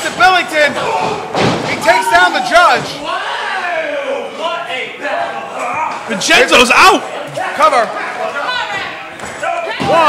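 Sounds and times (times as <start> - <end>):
raised voices in a hall: 0.0 - 10.0.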